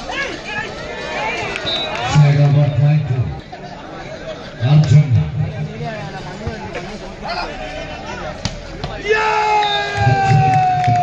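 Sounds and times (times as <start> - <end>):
spectators shouting: 7.2 - 11.0.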